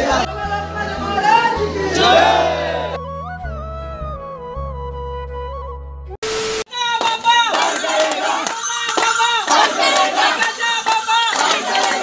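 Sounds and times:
men shouting and chanting: 0.0 - 3.0, 6.8 - 12.0.

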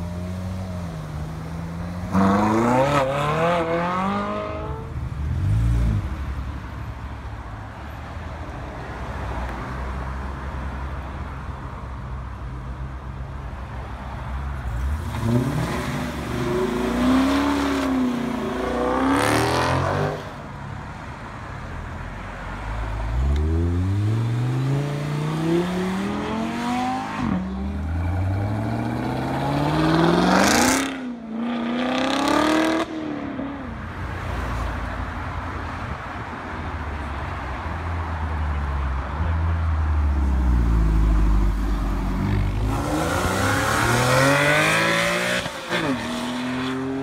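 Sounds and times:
cars accelerating hard: 14.7 - 20.4, 23.1 - 33.7, 40.3 - 47.0.

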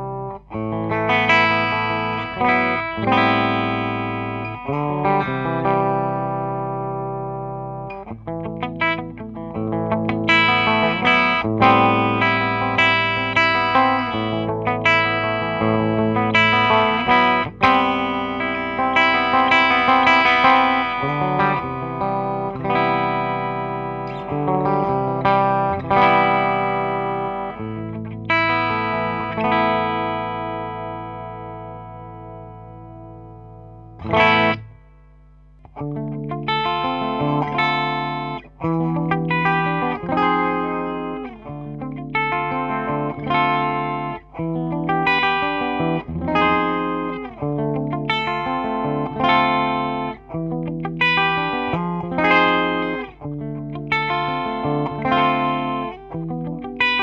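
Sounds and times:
clean electric guitar chords: 0.0 - 57.0.

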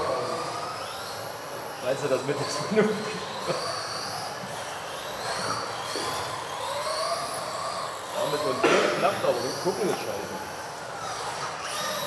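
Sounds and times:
electric rc cars whining: 0.0 - 12.0.

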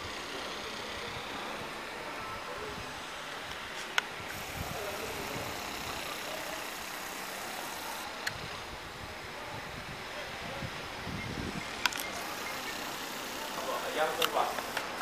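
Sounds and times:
sharp clicks: 11.8 - 13.0, 14.1 - 15.0.

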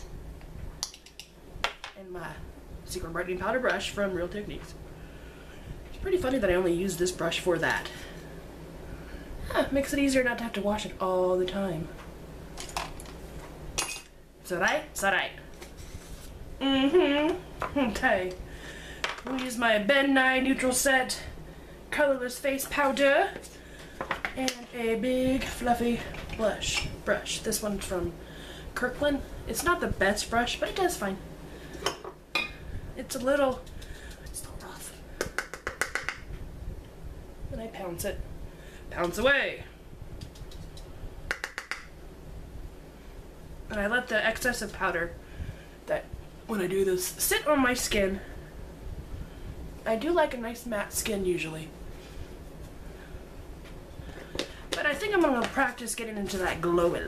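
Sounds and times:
makeup items clicking: 40.2 - 41.9.

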